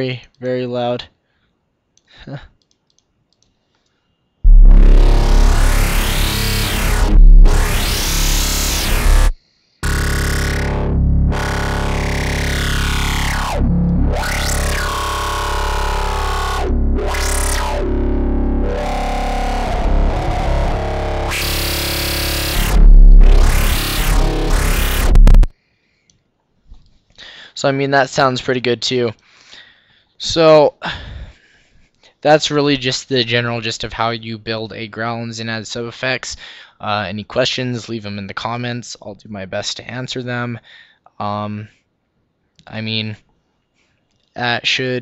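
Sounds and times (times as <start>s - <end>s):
deep sub-bass: 4.5s - 25.5s
distorted wobbling growl bass: 4.5s - 25.5s.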